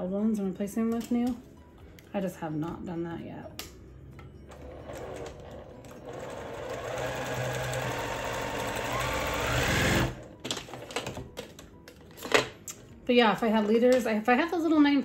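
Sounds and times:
electric sewing machine stitching: 4.5 - 10.3.

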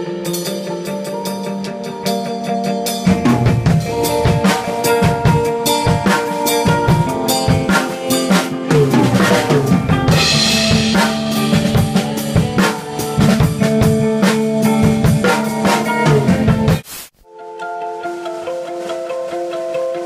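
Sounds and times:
hard rock band playing: 0.0 - 16.8
drum kit hit hard: 3.0 - 16.9.

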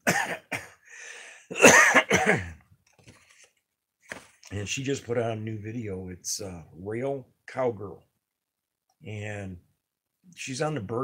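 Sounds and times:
man coughing: 0.0 - 0.8, 1.5 - 2.6
breath in: 0.8 - 1.5.

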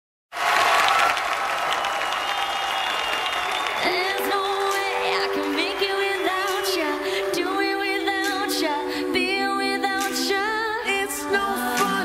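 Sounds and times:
audience applauding: 0.3 - 8.4.

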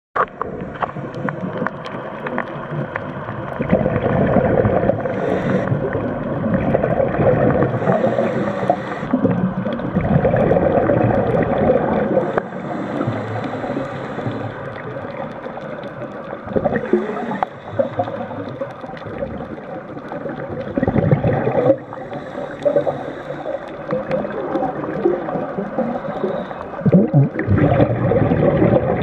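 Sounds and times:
underwater rushing and bubbles: 0.2 - 29.0.

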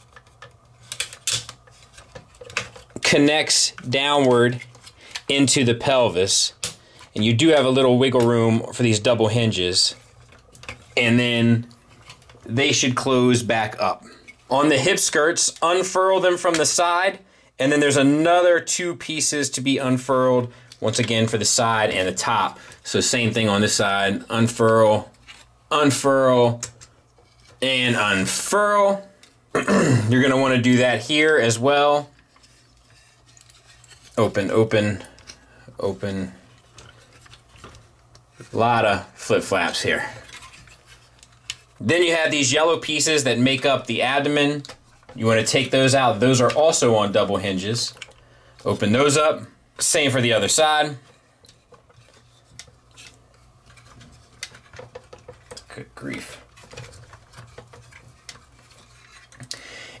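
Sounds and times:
plastic panels clicking and rubbing: 0.1 - 3.0, 51.5 - 55.8.

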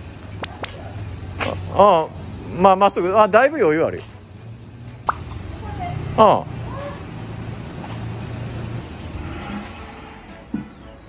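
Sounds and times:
car engine humming: 0.0 - 11.0.

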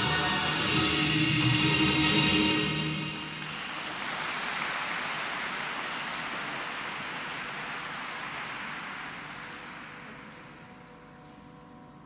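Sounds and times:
audience applauding: 3.2 - 10.9.

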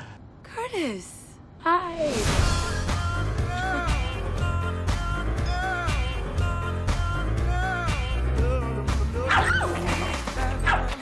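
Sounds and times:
soundtrack music with low bass: 2.3 - 11.0.

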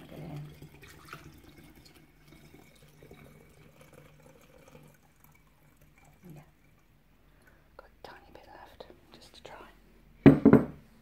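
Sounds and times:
liquid trickling into bottle: 0.0 - 7.6.

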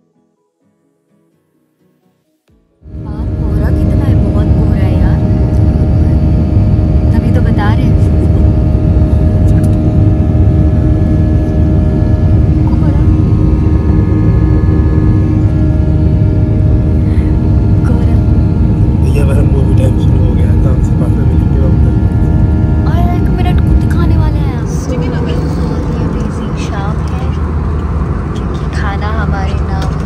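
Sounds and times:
jet engine and airflow roar: 2.8 - 30.0
steady engine tones: 2.8 - 30.0.

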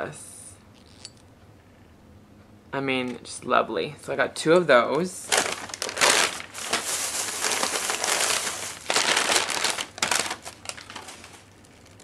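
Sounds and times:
packaging crinkling and rustling: 5.2 - 12.0.

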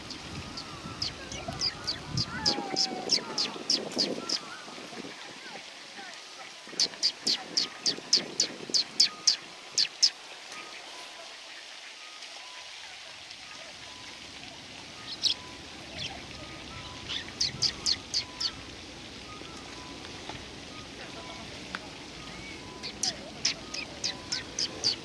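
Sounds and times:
sparrow chirping: 0.0 - 4.5, 6.8 - 10.2, 15.0 - 18.6, 22.4 - 25.0.

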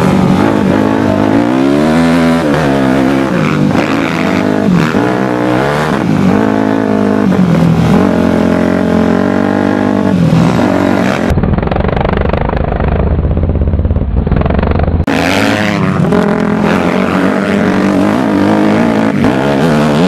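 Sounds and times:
dirt bike engine revving: 0.0 - 20.0
heavy low rumble: 10.3 - 15.1.

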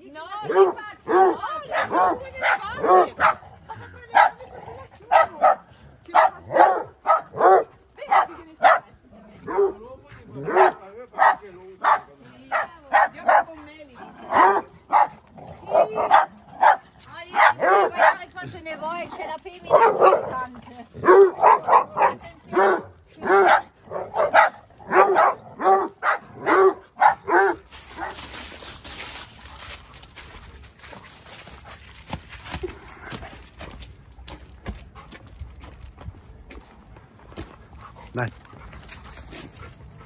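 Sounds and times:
dogs barking in play: 0.4 - 30.2
footsteps on gravel: 26.0 - 40.0.

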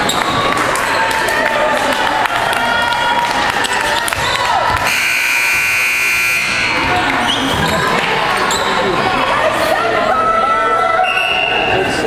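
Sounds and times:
voices in hall: 0.0 - 12.0
shrill buzzer blast: 4.9 - 6.8
shoe squeaks on court floor: 8.4 - 8.8.

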